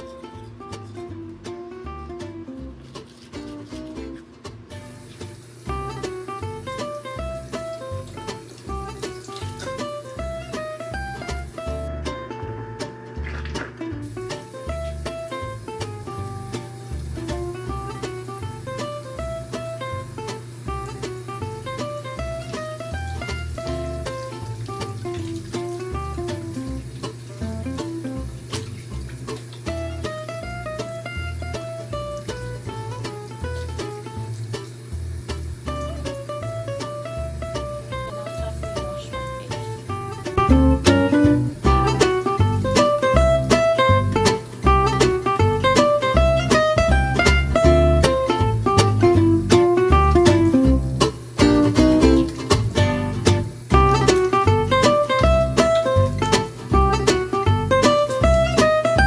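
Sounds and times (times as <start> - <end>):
plucked-string melody: 0.0 - 59.0
steady beat: 0.0 - 59.0.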